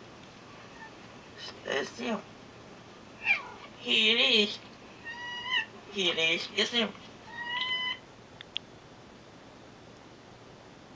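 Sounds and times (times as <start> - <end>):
cat meowing: 3.2 - 3.7, 5.0 - 5.7, 7.2 - 8.0.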